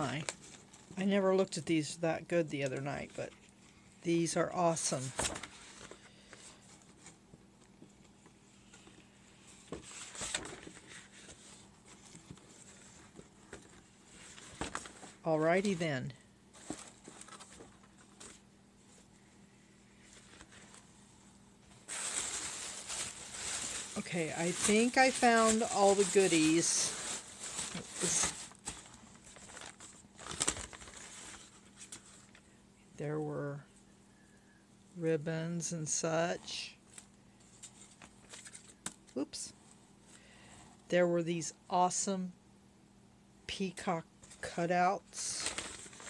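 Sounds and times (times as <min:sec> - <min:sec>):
paper handling: 0:05.0 - 0:15.8, 0:21.8 - 0:32.4, 0:36.9 - 0:39.2, 0:45.3 - 0:46.0
tissue paper crinkling: 0:08.4 - 0:15.9, 0:16.5 - 0:19.1, 0:21.7 - 0:32.4, 0:45.2 - 0:46.0.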